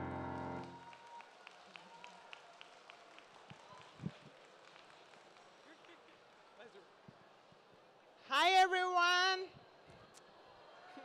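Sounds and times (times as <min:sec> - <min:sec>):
electronic keyboard chord: 0:00.0 - 0:00.7
faint audience clapping: 0:00.0 - 0:06.7.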